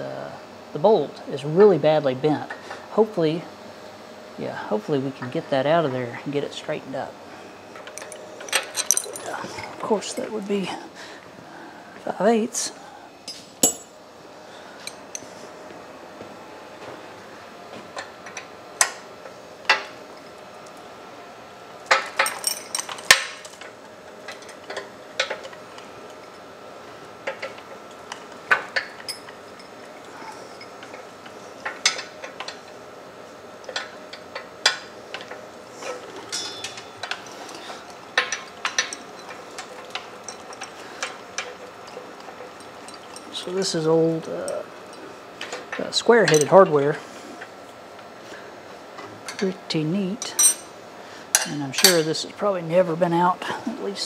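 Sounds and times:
hand tools clinking on metal: 0:07.8 - 0:10.4, 0:21.9 - 0:25.6, 0:34.6 - 0:44.7, 0:45.4 - 0:46.6, 0:50.2 - 0:50.7, 0:51.4 - 0:52.2.

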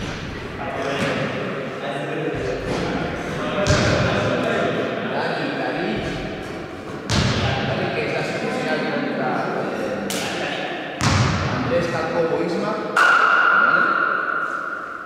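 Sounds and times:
basketball thuds: 0:07.1 - 0:07.6.

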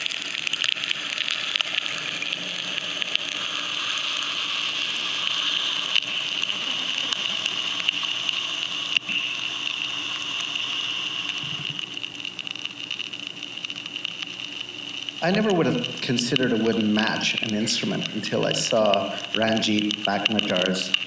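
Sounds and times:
burning match hissing and crackling: 0:00.0 - 0:21.0.

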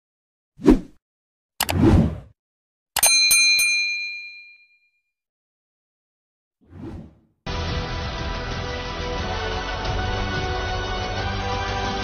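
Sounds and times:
metallic bell ding: 0:03.0 - 0:04.9.

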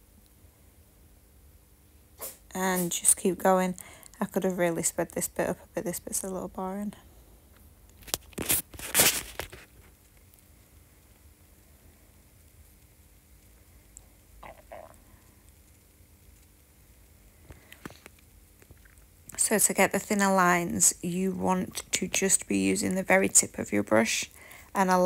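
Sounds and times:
person speaking: 0:02.5 - 0:07.0, 0:14.4 - 0:15.0
brief rustling: 0:08.0 - 0:09.9
mouth clicks and lip smacks: 0:14.0 - 0:15.2, 0:17.6 - 0:19.1.

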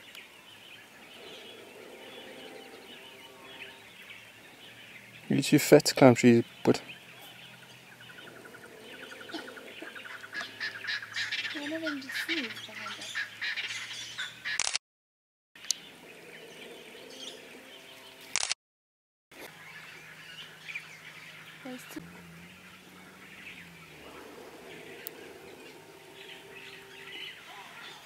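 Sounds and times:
bird chirps: 0:00.0 - 0:14.6, 0:15.6 - 0:18.3, 0:19.4 - 0:28.0
bird trill: 0:00.0 - 0:14.6, 0:15.6 - 0:18.3, 0:19.5 - 0:28.0
low sliding bird calls: 0:00.9 - 0:05.4, 0:06.4 - 0:14.6, 0:19.4 - 0:28.0.

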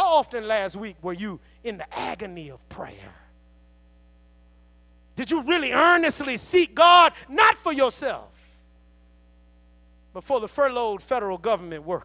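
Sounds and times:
man speaking: 0:00.0 - 0:03.3, 0:05.2 - 0:08.3, 0:10.2 - 0:12.0
faint electrical mains hum: 0:00.0 - 0:12.0.

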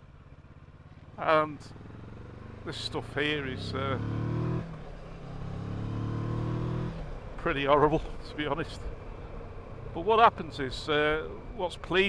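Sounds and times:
motorcycle engine accelerating: 0:00.0 - 0:11.5.

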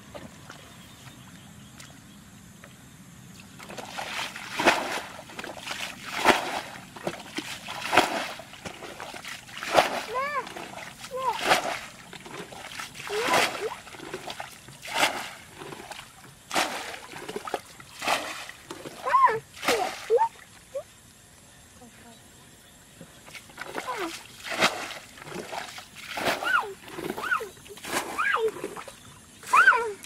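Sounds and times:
water splashing: 0:03.4 - 0:20.8, 0:23.2 - 0:30.0.

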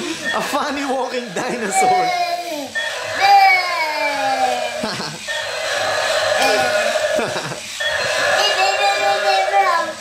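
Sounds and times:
toy dinosaur electronic roar: 0:03.0 - 0:10.0.

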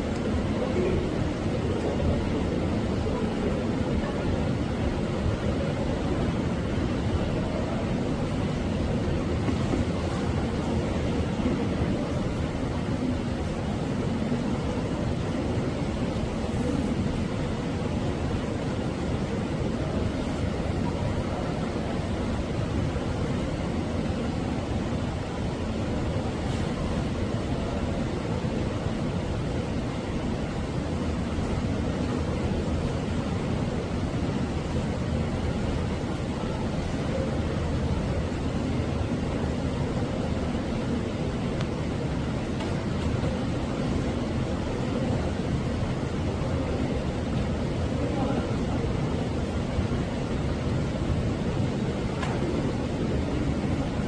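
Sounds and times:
low background rumble and hiss: 0:00.0 - 0:54.0.

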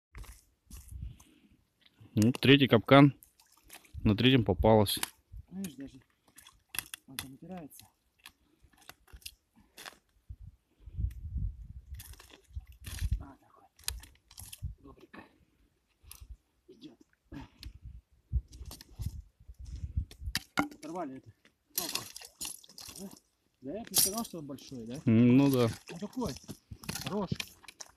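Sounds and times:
ice and slush crunching: 0:25.3 - 0:27.9.

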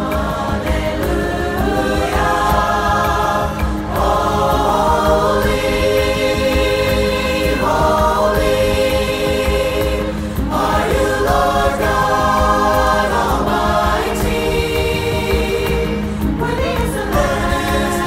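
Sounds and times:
mixed choir singing held chords: 0:00.0 - 0:18.0.

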